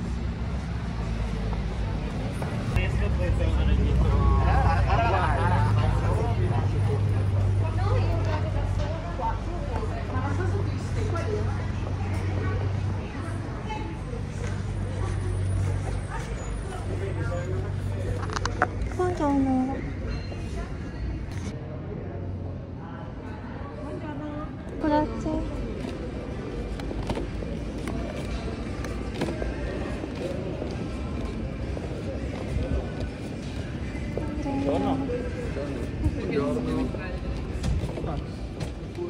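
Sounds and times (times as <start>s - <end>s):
faint indistinct voices: 0.0s - 39.0s.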